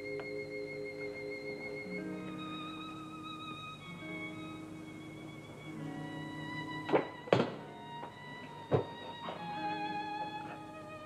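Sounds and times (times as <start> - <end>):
soft violin music: 0.0 - 11.0.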